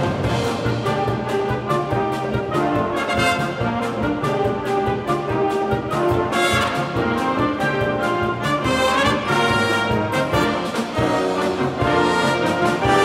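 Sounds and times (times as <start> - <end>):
steady drum beat: 0.0 - 13.0
wind band playing: 0.0 - 13.0.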